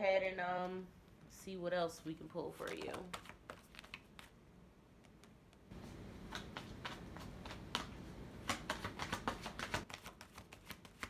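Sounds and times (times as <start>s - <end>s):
cards being shuffled: 2.5s - 4.4s, 5.0s - 11.0s.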